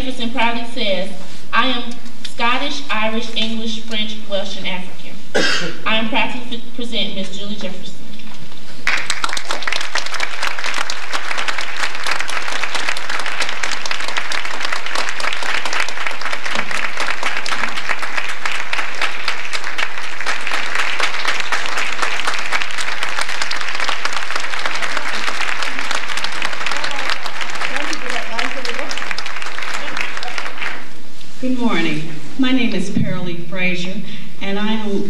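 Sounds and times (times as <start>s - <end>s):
audience clapping: 8.7s - 31.0s.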